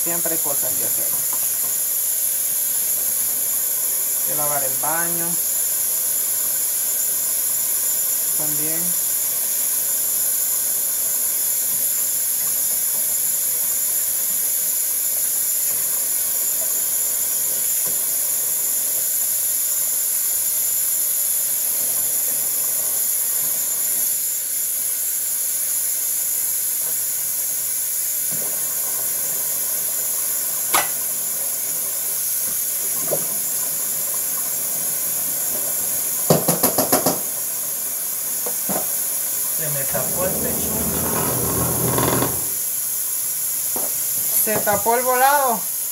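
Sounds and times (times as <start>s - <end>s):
dishes clinking: 30.8s - 31.0s.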